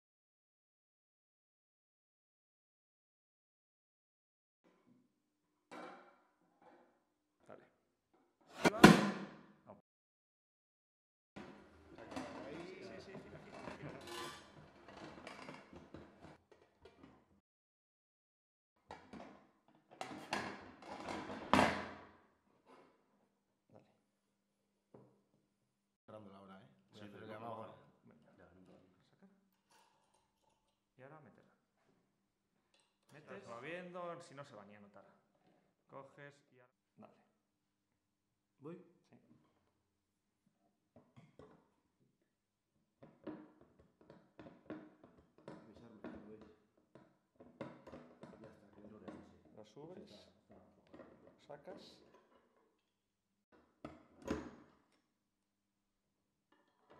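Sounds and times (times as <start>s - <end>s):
can opener scraping metal: 11.4s - 16.4s.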